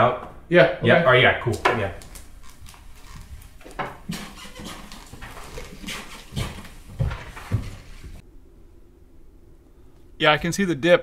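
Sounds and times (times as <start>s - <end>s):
footsteps on floor: 2.0s - 8.2s.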